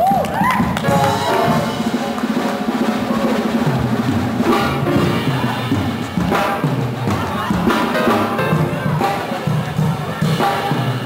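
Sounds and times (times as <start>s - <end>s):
lively band music with drums: 0.0s - 11.0s.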